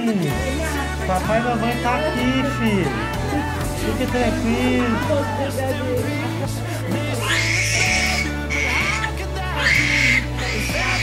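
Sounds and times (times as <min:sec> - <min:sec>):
background music: 0:00.0 - 0:11.0
baby crying: 0:02.0 - 0:11.0.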